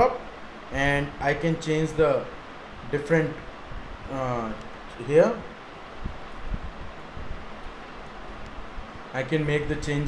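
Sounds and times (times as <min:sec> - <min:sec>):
room noise hiss: 0:00.0 - 0:10.0
faint low bumps: 0:02.7 - 0:10.0.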